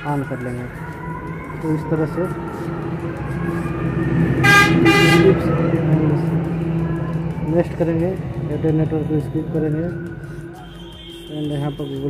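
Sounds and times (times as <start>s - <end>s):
steady low hum: 0.0s - 11.1s
vehicle horn honks: 4.4s - 5.6s, 10.6s - 12.0s.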